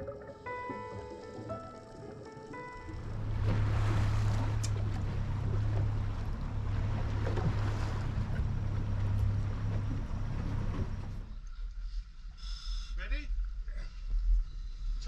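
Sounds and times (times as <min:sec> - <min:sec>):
rushing water: 0:00.0 - 0:11.2
boat engine droning: 0:00.0 - 0:11.5
wind: 0:00.0 - 0:15.0.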